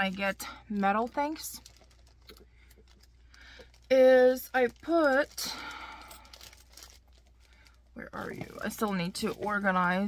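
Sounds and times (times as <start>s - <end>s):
packaging crinkling: 0.0s - 10.0s.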